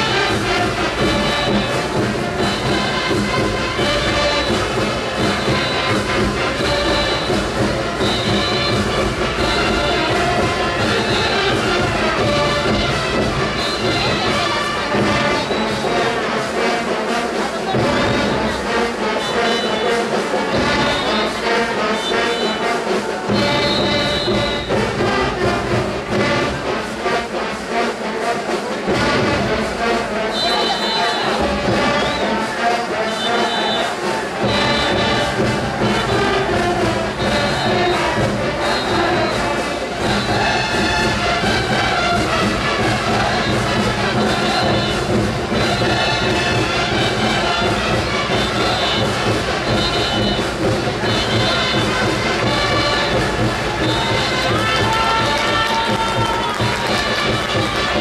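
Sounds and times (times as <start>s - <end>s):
brass band playing dance music: 0.0s - 58.0s.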